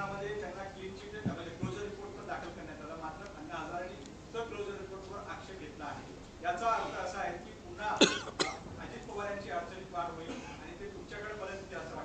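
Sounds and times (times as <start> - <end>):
person coughing: 8.0 - 8.7, 10.3 - 10.7.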